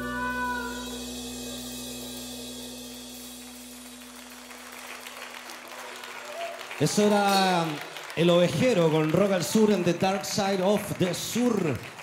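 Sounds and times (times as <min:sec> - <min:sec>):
band holding last note: 0:00.0 - 0:04.7
audience applauding: 0:03.4 - 0:12.0.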